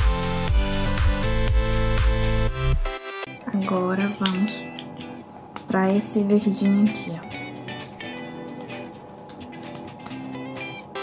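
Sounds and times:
electronic music with steady beat: 0.0 - 3.3, 6.6 - 11.0
soft music: 0.0 - 11.0.

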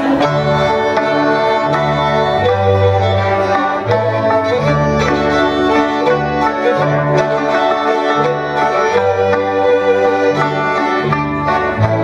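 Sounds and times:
cimbalom hammered strings: 0.0 - 12.0
fiddle: 0.0 - 12.0.

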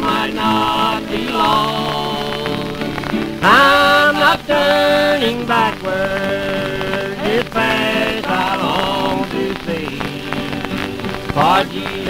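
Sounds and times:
person singing: 0.0 - 12.0
record clicks: 0.0 - 12.0
record surface crackle: 0.0 - 12.0.

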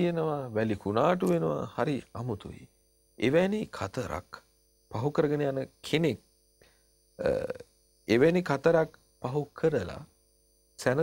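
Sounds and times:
man talking: 0.0 - 6.2, 10.8 - 11.0.

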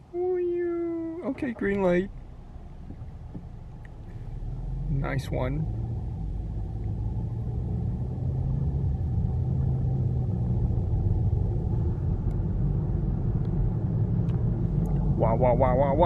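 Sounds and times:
car cabin road and engine rumble: 0.0 - 16.0.

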